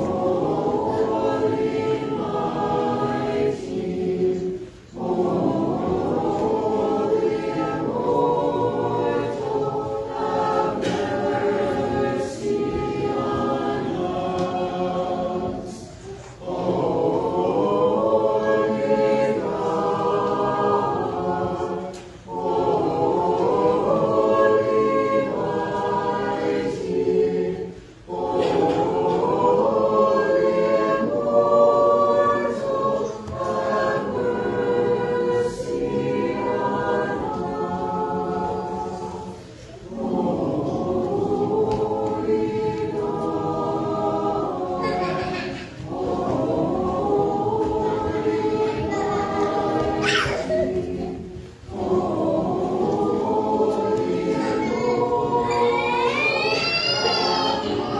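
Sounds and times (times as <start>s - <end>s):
choir singing unaccompanied hymn: 0.0s - 57.9s.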